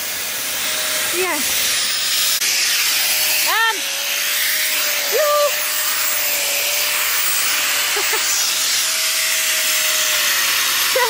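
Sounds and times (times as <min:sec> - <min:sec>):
concrete grinder whining: 0:00.0 - 0:11.0
grinder scraping concrete: 0:00.0 - 0:11.0.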